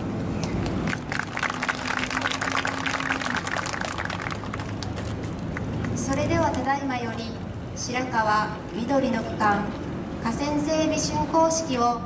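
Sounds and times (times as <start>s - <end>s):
audience applauding: 0.6s - 6.0s.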